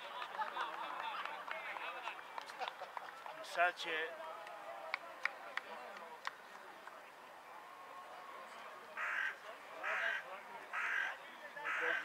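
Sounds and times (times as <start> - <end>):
faint distant voices: 0.0 - 12.0
crow cawing: 9.0 - 12.0.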